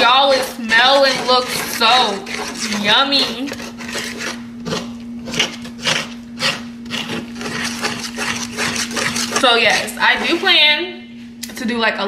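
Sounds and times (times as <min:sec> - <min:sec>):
utensil scraping mixing bowl: 0:00.0 - 0:11.0.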